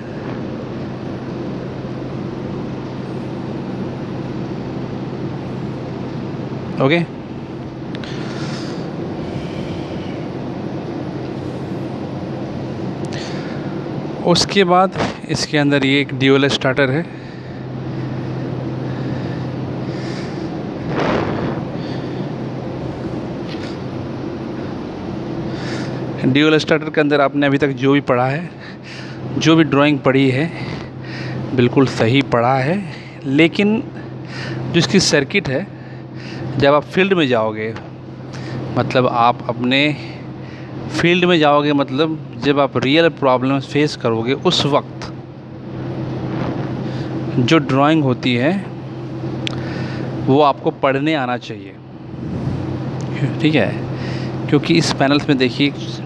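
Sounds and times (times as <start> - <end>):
rushing background noise: 0.0 - 26.3, 44.5 - 50.3, 51.8 - 55.2
machinery humming: 0.0 - 56.0.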